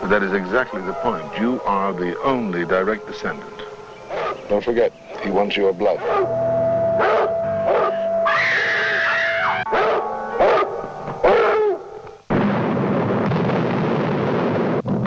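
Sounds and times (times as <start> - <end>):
music drone: 0.0 - 12.3
dog snarling and barking: 4.1 - 4.5, 6.0 - 6.3, 7.0 - 8.8, 9.6 - 11.9
explosion: 12.3 - 15.0.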